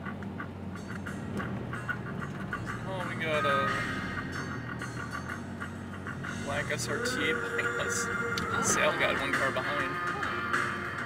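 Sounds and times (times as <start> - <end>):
vehicle drone from inside cabin: 0.0 - 11.0.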